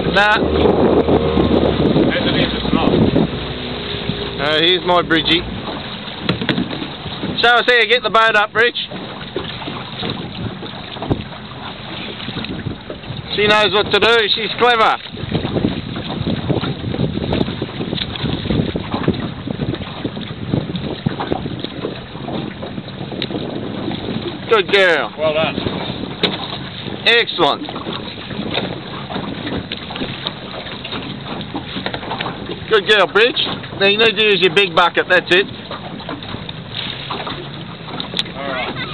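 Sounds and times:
water moving around boat: 0.0 - 38.9
wind buffeting microphone: 0.0 - 38.9
low thump: 5.4 - 6.9.

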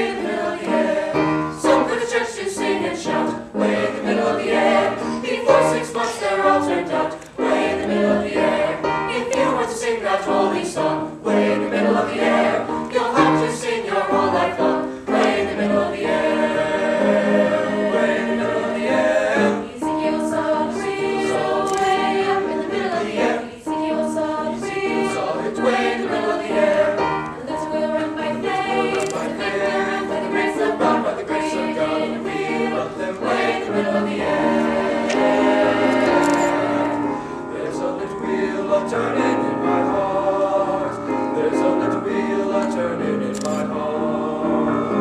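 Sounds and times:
mixed choir singing: 0.0 - 45.0.

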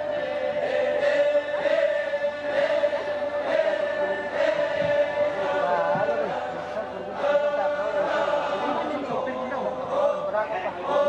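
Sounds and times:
voices weaving above: 0.0 - 11.0.

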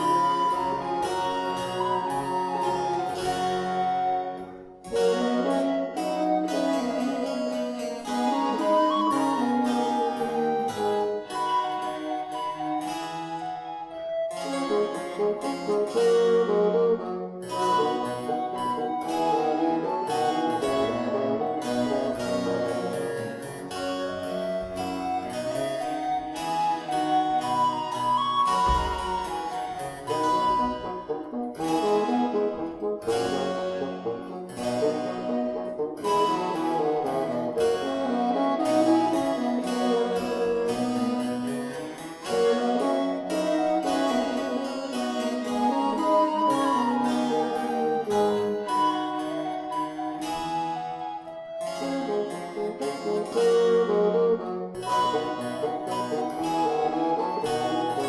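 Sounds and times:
baroque chamber music: 0.0 - 58.0.

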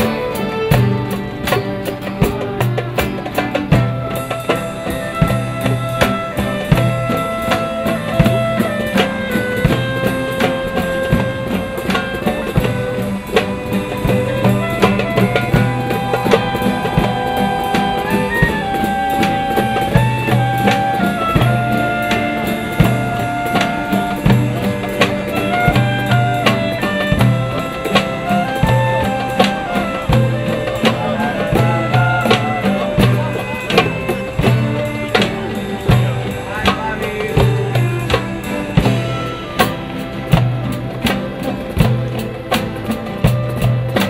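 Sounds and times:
acoustic ensemble playing: 0.0 - 44.0
steady drum beat: 0.0 - 44.0.

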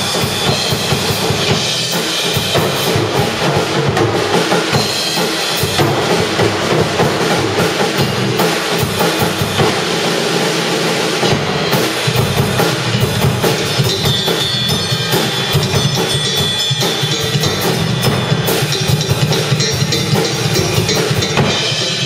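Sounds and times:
drum kit playing: 0.0 - 22.0.

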